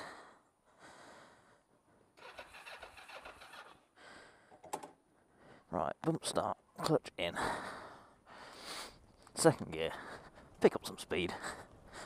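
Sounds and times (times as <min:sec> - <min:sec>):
motorcycle starter clatter: 0:02.2 - 0:03.8.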